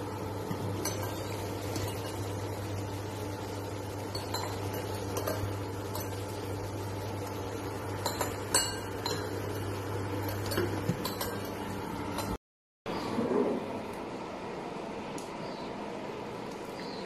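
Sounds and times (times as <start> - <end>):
induction cooker hum: 0.0 - 17.0.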